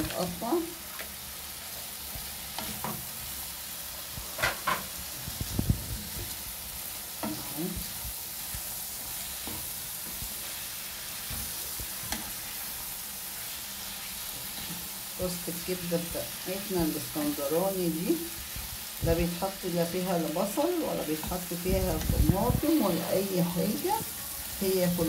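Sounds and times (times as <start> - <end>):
food sizzling in oil: 0.0 - 25.0
wooden spoon scraping a pan: 7.1 - 15.0.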